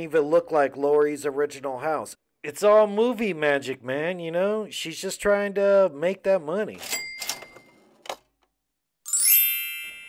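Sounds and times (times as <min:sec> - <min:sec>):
bright high ding: 0:09.1 - 0:10.0.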